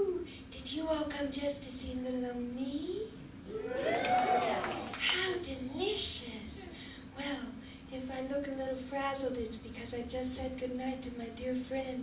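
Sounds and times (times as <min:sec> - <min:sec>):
woman speaking into a microphone: 0:00.0 - 0:03.2, 0:04.4 - 0:12.0.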